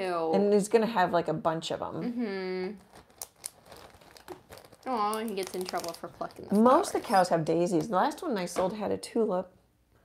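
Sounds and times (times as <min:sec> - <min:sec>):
plastic bag crinkling: 0:02.8 - 0:07.4.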